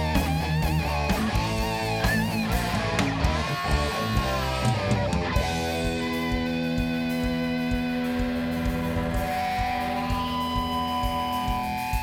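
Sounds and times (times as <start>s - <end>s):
electric guitar holding long notes: 0.0s - 12.0s.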